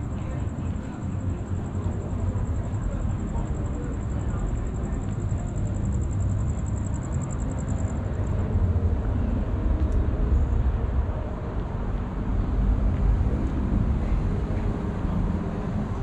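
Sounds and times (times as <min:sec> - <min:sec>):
low rumble of road traffic: 0:00.0 - 0:16.0
wind: 0:00.0 - 0:16.0.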